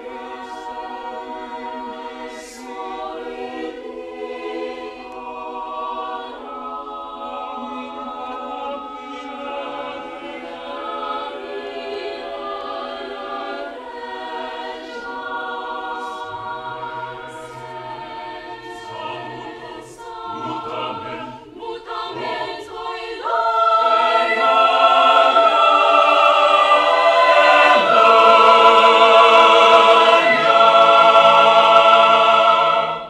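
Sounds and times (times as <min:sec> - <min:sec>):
a cappella choir singing: 0:00.0 - 0:33.0.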